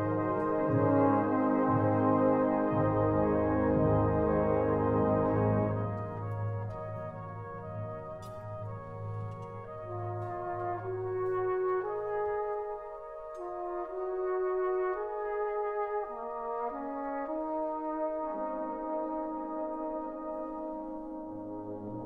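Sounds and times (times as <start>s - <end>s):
brass band playing chords: 0.0s - 22.0s.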